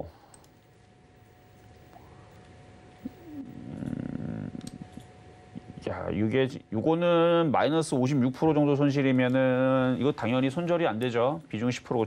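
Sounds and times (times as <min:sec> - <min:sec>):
man humming: 0:03.0 - 0:05.8.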